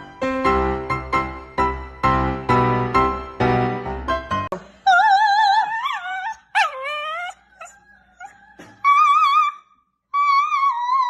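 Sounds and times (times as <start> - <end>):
dog howling: 4.9 - 11.0.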